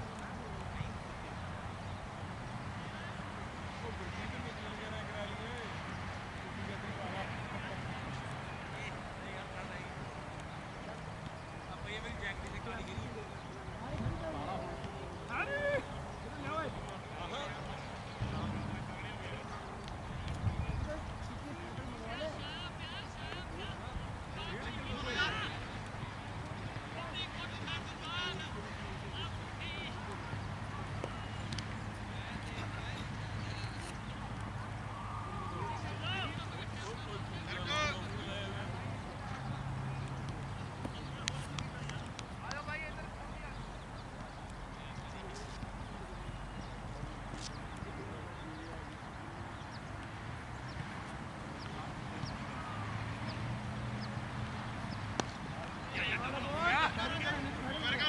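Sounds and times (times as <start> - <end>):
distant people talking: 0.0 - 58.0
low rumbling thumps: 18.2 - 19.1.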